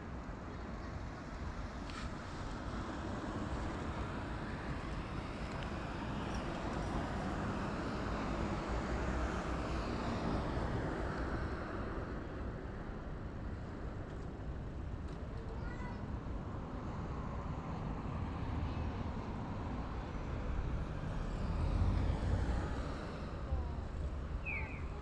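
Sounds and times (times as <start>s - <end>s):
wind and road rush: 0.0s - 25.0s
car passing: 20.5s - 25.0s.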